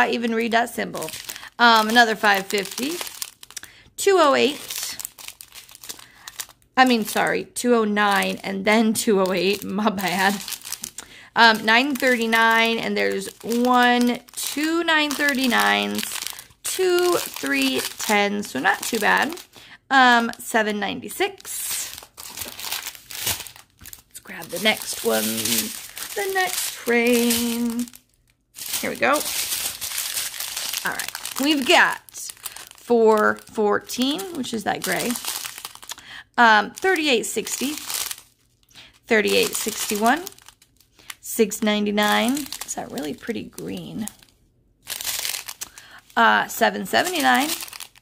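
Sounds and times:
plastic bags crinkling: 0.0 - 48.0.

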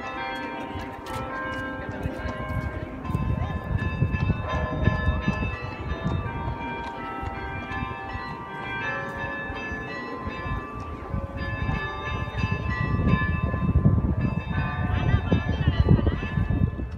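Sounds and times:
carillon bells playing a melody: 0.0 - 16.9.

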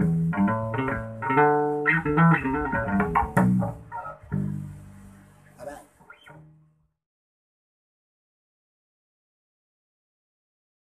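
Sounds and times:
electric bass guitar notes: 0.0 - 6.7.

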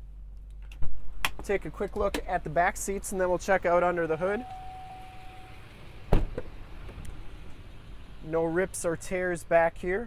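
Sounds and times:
truck door thump: 6.1 - 6.5.

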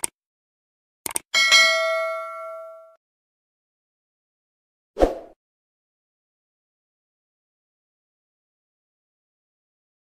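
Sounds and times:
notification bell ding: 1.4 - 3.0.

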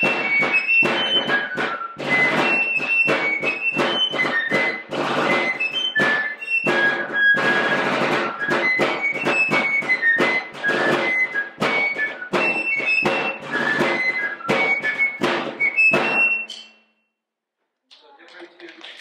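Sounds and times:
field drum beating: 0.0 - 16.4
fife playing military tune: 0.0 - 16.7.

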